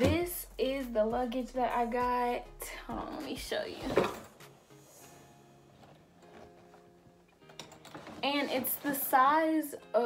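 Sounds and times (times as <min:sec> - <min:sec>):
faint background music: 0:00.0 - 0:10.0
suitcase clicks and knocks: 0:07.4 - 0:08.5.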